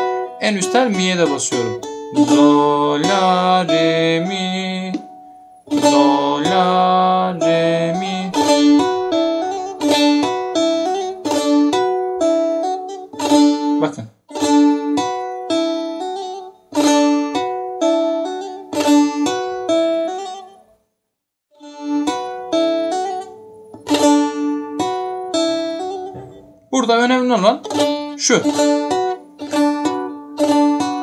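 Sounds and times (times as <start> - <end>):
finger-plucked lute notes: 0.0 - 20.6, 21.6 - 31.0.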